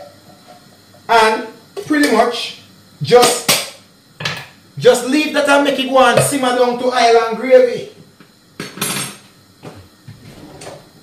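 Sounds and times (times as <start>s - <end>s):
kitchen drawer opening: 10.1s - 11.0s.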